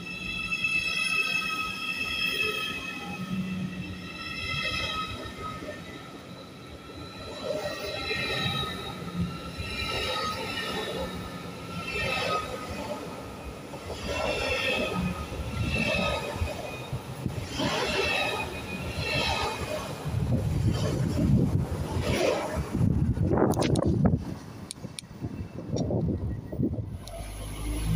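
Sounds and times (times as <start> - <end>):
deep train rumble: 3.0 - 27.9.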